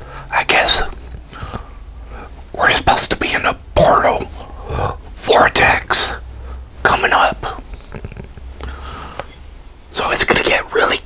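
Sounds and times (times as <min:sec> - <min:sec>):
man whispering: 0:00.0 - 0:01.1, 0:02.0 - 0:08.2, 0:09.9 - 0:11.0.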